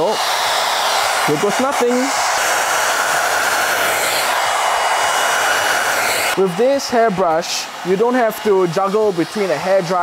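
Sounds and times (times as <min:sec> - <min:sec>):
hair dryer blowing air: 0:00.0 - 0:10.0.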